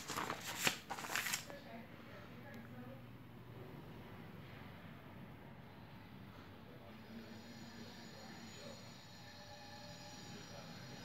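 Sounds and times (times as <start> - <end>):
paper page being turned: 0.0 - 1.6.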